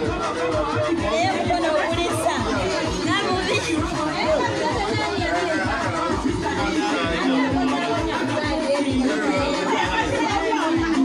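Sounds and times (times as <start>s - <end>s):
crowd chatter: 0.0s - 11.0s
music with a steady beat: 0.0s - 11.0s.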